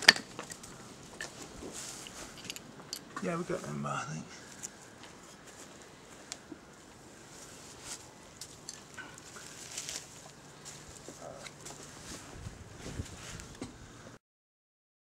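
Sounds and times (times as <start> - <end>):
dry leaves rustling: 7.2 - 13.6.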